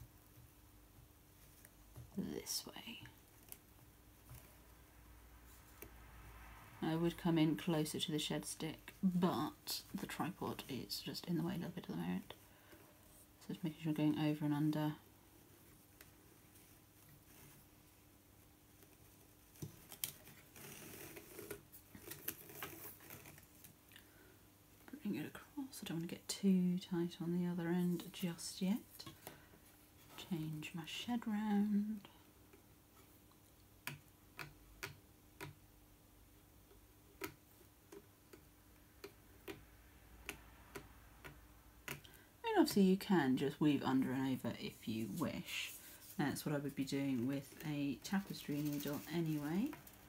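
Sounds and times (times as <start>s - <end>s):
faint steady hum: 0.0s - 50.0s
yarn rustling on loom: 42.7s - 50.0s.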